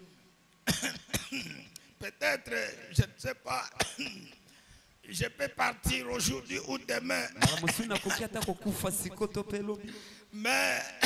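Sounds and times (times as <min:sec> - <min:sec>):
man coughing: 0:00.7 - 0:01.7, 0:03.8 - 0:04.4, 0:07.4 - 0:08.6.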